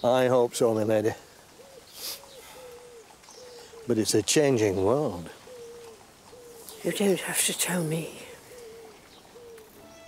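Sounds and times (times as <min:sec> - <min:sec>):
pigeon cooing: 0:05.1 - 0:06.8, 0:08.3 - 0:09.9.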